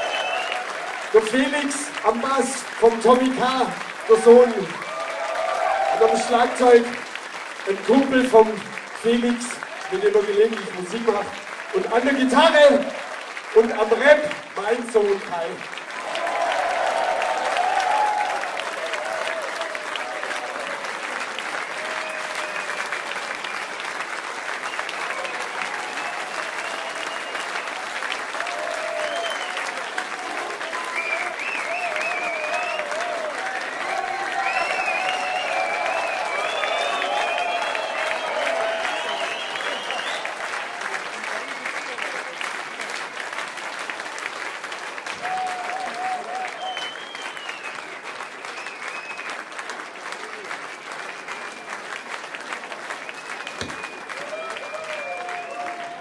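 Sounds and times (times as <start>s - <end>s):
shouts and whistle-like calls: 0.0s - 0.8s, 28.6s - 29.8s, 30.7s - 40.4s, 45.2s - 49.4s, 53.2s - 56.0s
audience applauding and cheering: 0.0s - 56.0s.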